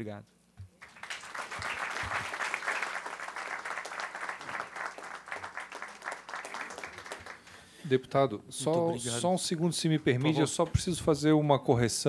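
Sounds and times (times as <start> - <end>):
audience applauding: 0.8 - 7.7.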